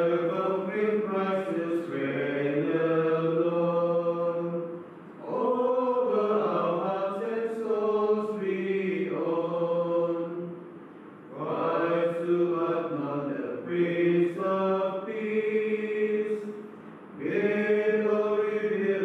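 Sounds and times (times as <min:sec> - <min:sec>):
men chanting a hymn: 0:00.0 - 0:10.6, 0:11.3 - 0:19.0.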